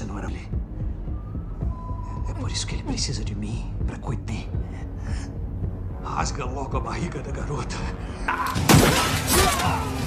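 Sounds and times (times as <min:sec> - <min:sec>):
film score music: 0:00.0 - 0:10.0
glass shattering: 0:08.4 - 0:10.0.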